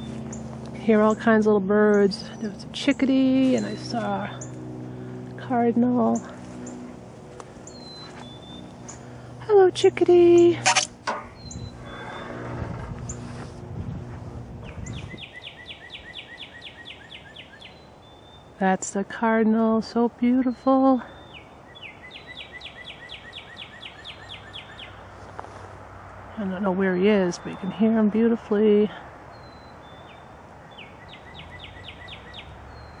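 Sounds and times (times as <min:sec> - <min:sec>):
small birds chirping: 0:00.0 - 0:13.5, 0:14.6 - 0:25.6, 0:26.4 - 0:33.0
bird whistling song: 0:11.4 - 0:12.3, 0:14.7 - 0:18.5, 0:21.1 - 0:24.9, 0:29.4 - 0:33.0.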